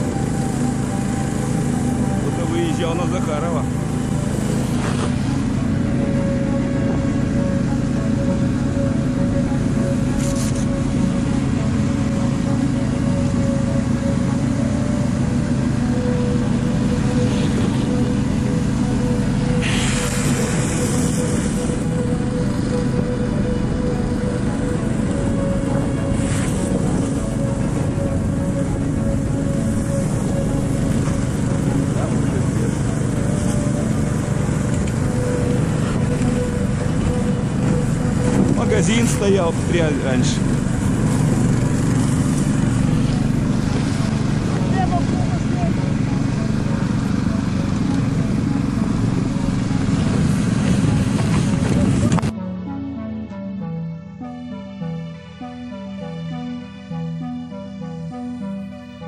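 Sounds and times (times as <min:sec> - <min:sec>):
snowmobile engine running: 0:00.0 - 0:52.8
hissing rushes: 0:19.6 - 0:21.7.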